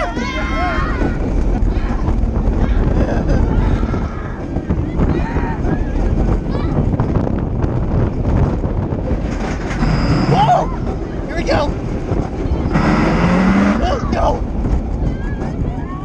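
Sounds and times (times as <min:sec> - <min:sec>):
roller coaster train rumbling on track: 0:00.0 - 0:16.0
wind rushing over microphone: 0:00.0 - 0:16.0
riders yelling: 0:10.2 - 0:10.9.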